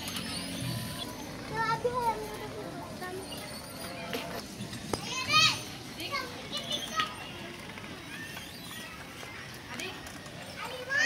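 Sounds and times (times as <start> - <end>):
children calling and chattering: 0.0 - 11.0
children squealing: 5.1 - 7.3, 7.9 - 9.5.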